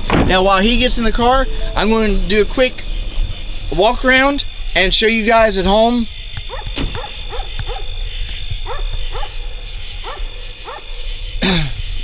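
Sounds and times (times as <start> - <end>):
crickets chirping: 0.0 - 12.0
dog barking: 6.5 - 8.0, 8.6 - 11.2.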